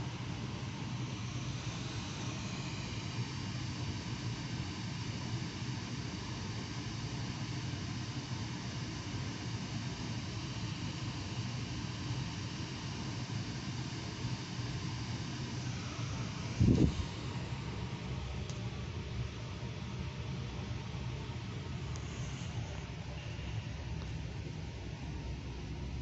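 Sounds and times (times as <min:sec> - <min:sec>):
ceiling fan whoosh: 0:15.5 - 0:26.0.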